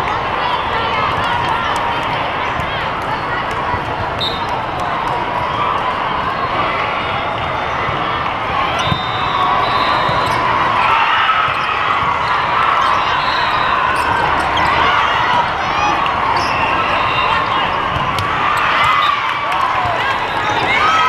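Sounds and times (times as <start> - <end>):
din of many voices: 0.0 - 21.0
sneakers squeaking on court: 9.9 - 10.6, 11.4 - 15.5, 16.2 - 19.2.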